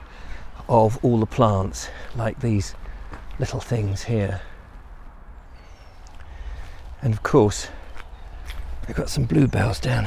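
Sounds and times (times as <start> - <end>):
bird chirp: 5.3 - 10.0.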